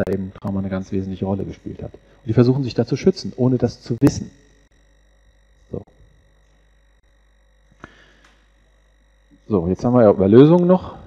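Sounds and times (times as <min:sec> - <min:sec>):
low hum: 0:00.0 - 0:11.0
steady high tones: 0:00.0 - 0:11.0.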